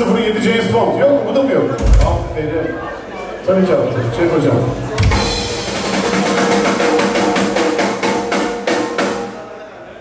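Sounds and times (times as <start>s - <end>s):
drum kit beat: 1.8s - 2.7s, 5.0s - 9.4s.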